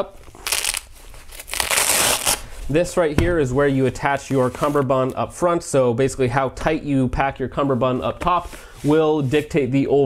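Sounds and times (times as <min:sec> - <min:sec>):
hook-and-loop fastener ripping open: 0:00.3 - 0:02.4.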